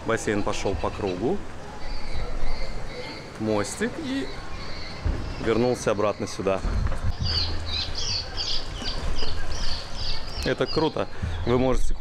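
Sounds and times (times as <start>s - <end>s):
small bird chirping: 4.0s - 6.4s, 7.1s - 11.5s.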